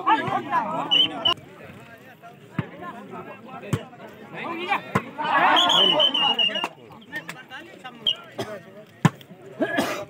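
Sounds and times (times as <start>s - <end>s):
voices of players and onlookers: 0.0s - 10.0s.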